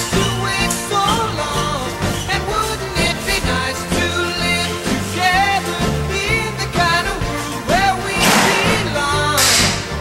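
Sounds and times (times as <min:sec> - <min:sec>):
song with singing over a beat: 0:00.0 - 0:10.0
bright crash hits: 0:08.2 - 0:09.6.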